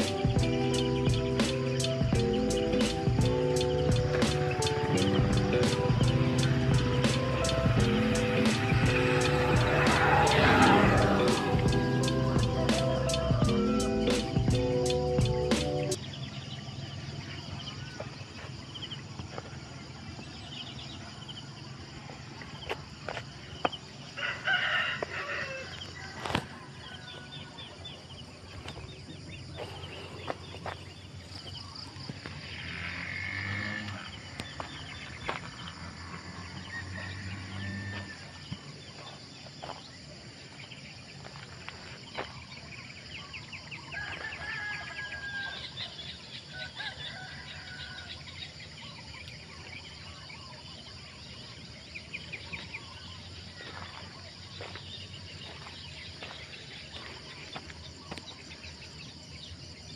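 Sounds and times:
birds chattering: 0.0 - 21.5, 22.2 - 59.9
rooster crowing: 24.2 - 27.8, 35.9 - 38.7, 43.8 - 48.6.

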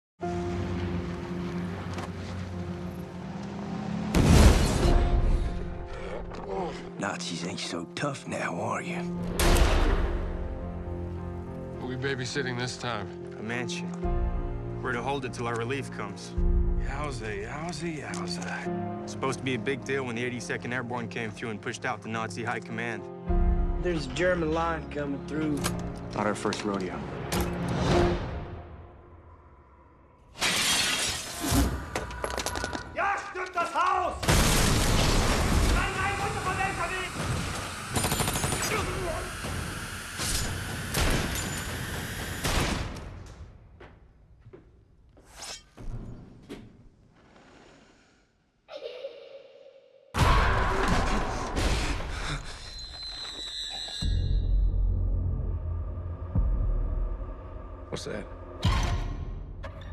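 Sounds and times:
loud shattering crash: 30.4 - 31.7.

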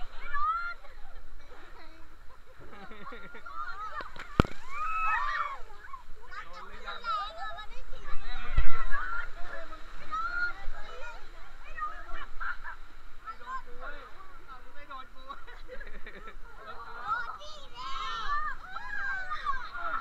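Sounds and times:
people laughing and calling out: 0.0 - 14.6, 15.2 - 20.0.

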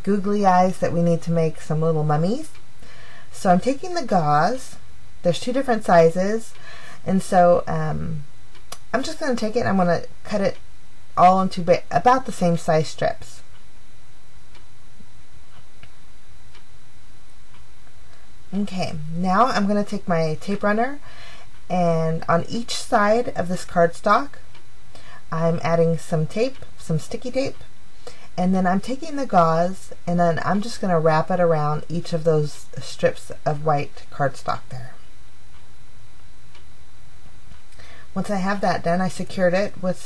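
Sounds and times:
faint ticking: 0.0 - 40.0
steady hiss: 0.0 - 40.0.

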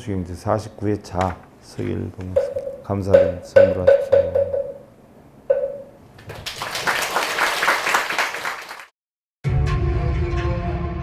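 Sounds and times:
man speaking: 0.0 - 4.4
audience applauding: 6.3 - 8.9.

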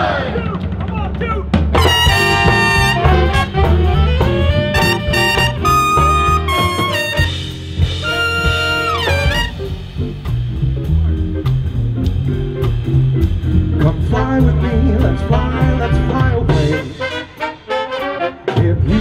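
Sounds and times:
swing band playing: 0.0 - 19.0
horn slide: 1.8 - 10.0, 14.6 - 18.9.

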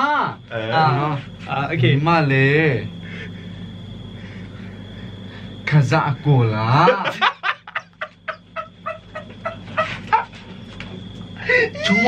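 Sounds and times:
people talking: 0.0 - 2.9, 5.7 - 7.3, 11.6 - 12.0
man cackling with laughter: 6.9 - 10.4.

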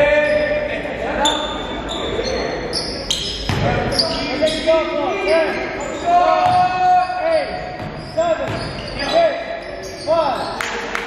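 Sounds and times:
sneakers squeaking: 0.0 - 10.8
basketball dribbling: 7.8 - 8.8.

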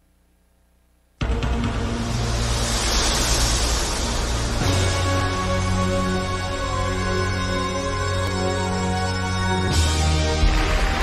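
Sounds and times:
steady low drone: 1.2 - 11.0
loud rushing whoosh: 1.5 - 6.4.

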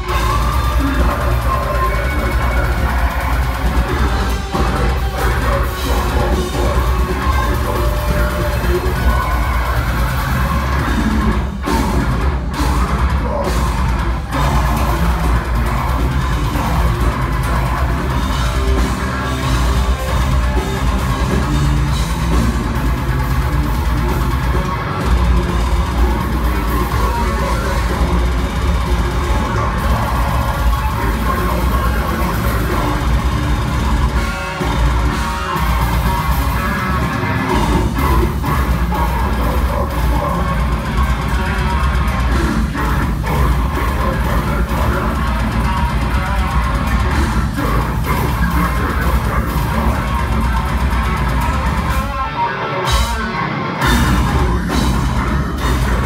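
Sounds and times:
bass guitar: 0.0 - 56.0
distorted guitars: 0.0 - 56.0
fast drums: 0.0 - 56.0.

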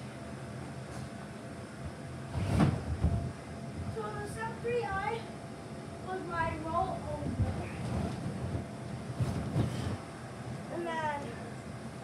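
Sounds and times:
child landing on bounce house: 2.3 - 3.3.

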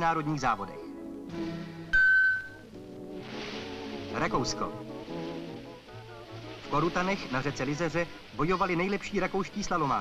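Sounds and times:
background music: 0.0 - 10.0
high beep: 1.9 - 2.6
rushing hiss: 3.1 - 10.0.

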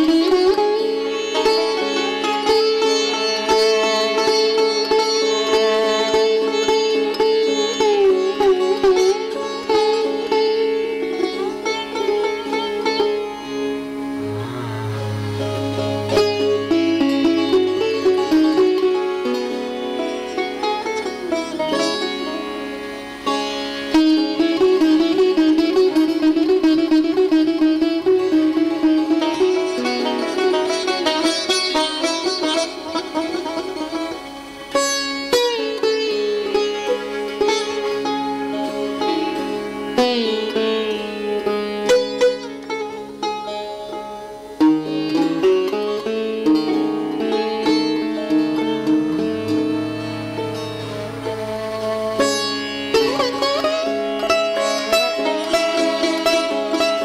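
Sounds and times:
other plucked strings: 0.0 - 57.0
plucked lute melody: 0.0 - 57.0
low held tone: 14.2 - 18.2.

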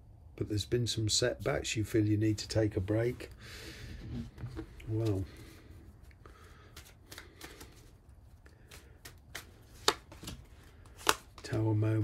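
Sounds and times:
cards shuffling: 4.0 - 11.7.

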